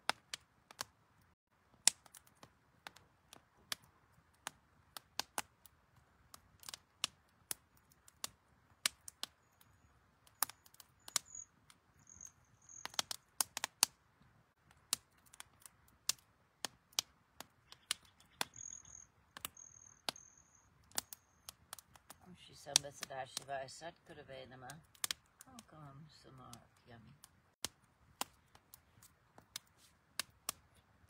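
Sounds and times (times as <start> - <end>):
wood fire crackling: 0.0 - 31.0.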